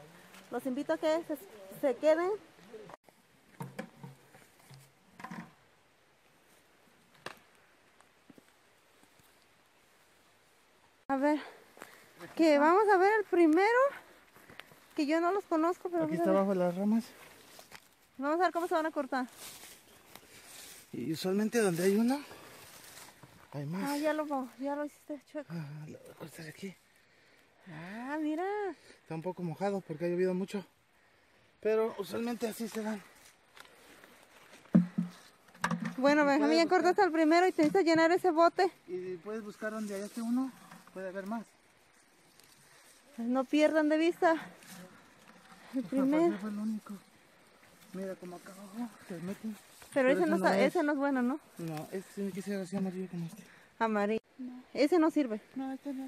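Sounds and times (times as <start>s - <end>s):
rustling in undergrowth: 6.2s - 25.2s, 32.0s - 53.9s.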